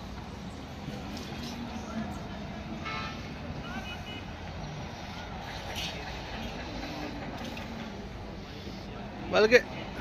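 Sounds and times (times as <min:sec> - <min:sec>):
faint indistinct voices: 0:01.0 - 0:10.0.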